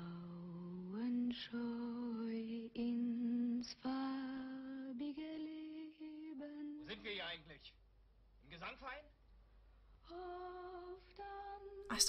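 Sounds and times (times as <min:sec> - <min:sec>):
woman humming a steady note: 0:00.0 - 0:06.8.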